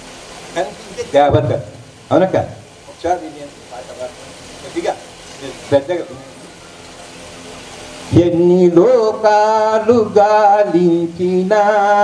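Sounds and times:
steady background hiss: 0.0 - 12.0
man speaking into a microphone: 0.6 - 6.2.

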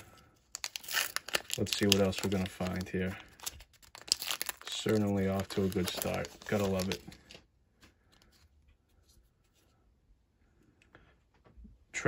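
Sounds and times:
baseball cards rustling: 0.0 - 9.7.

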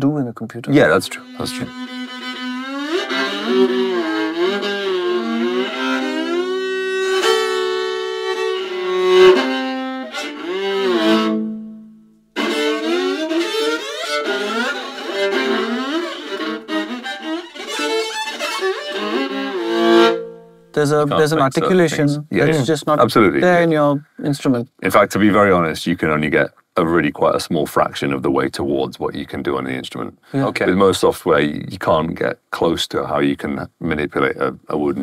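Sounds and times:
solo viola bowed: 0.8 - 22.0.

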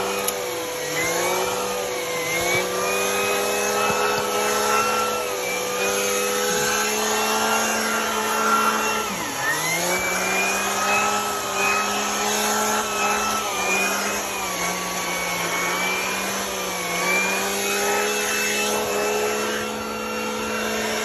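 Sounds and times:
vacuum cleaner running: 0.0 - 21.0.

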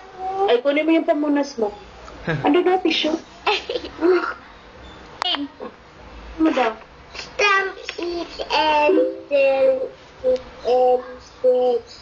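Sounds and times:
small child singing through speaker: 7.2 - 12.0.

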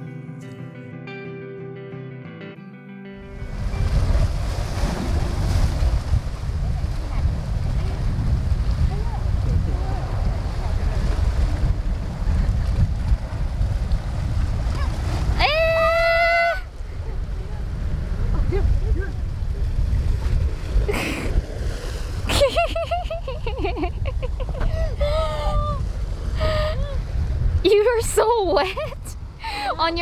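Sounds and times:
wind rumbling on microphone: 3.2 - 30.0
sea surf washing into rocks: 3.3 - 26.4.

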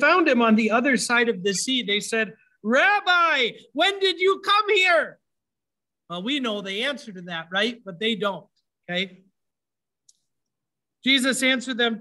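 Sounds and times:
man speaking: 0.0 - 5.3, 6.0 - 9.5, 10.9 - 12.0.

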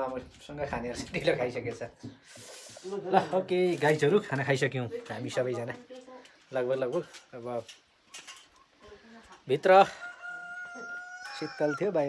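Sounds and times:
rooster crowing: 9.8 - 12.0.

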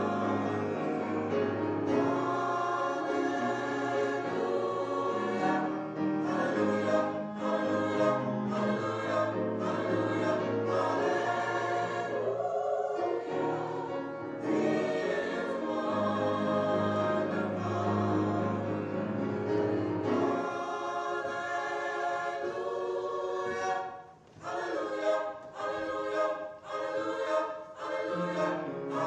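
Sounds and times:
small choir singing in harmony: 0.0 - 29.0.

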